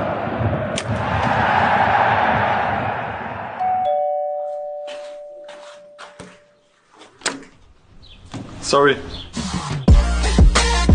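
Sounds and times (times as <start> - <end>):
two-note chime: 3.6 - 6.6.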